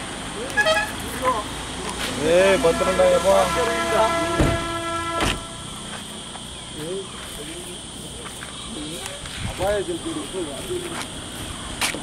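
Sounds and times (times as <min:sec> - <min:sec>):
vehicle horn held: 0:02.6 - 0:05.8.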